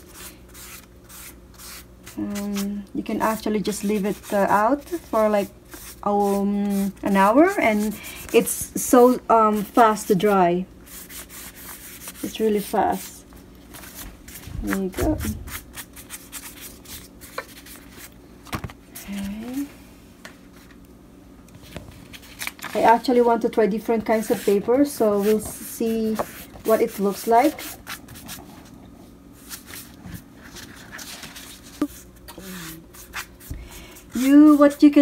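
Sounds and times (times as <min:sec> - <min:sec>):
paintbrush rubbing on paper: 0:03.6 - 0:13.2, 0:24.1 - 0:28.7
paper rustling: 0:21.6 - 0:23.0, 0:29.4 - 0:32.1.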